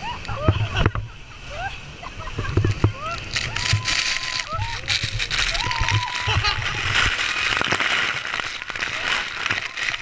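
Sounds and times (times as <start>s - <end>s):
rush of falling water: 0.0s - 10.0s
people shrieking and shouting: 3.0s - 7.2s.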